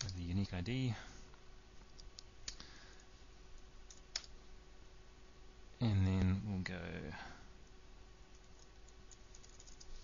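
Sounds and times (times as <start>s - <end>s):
computer keys clicking: 0.0s - 0.2s, 1.9s - 3.1s, 3.9s - 4.4s, 8.3s - 9.9s
faint steady hum: 0.0s - 10.0s.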